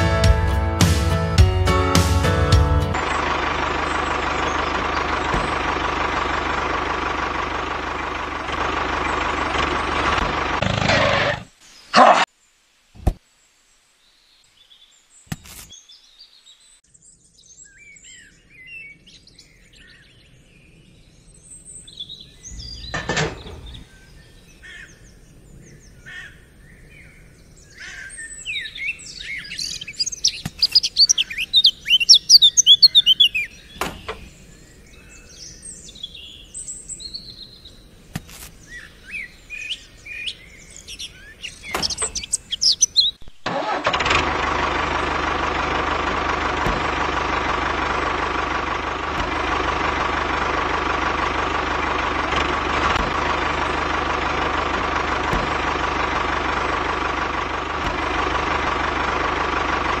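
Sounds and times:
birds chirping: 2.8s - 43.7s, 44.3s - 60.0s.

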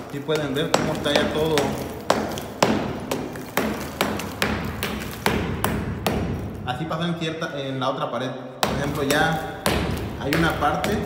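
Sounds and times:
hammer striking plaster: 0.0s - 6.8s, 8.6s - 11.0s.

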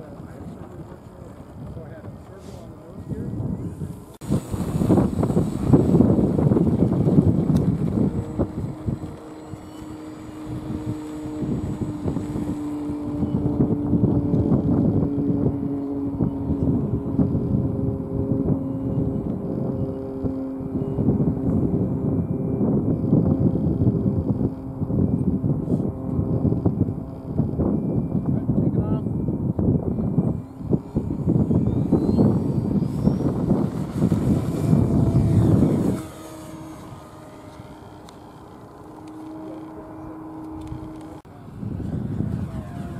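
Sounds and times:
model airplane motor and propeller: 0.0s - 42.9s
wind buffeting microphone: 0.0s - 42.9s.

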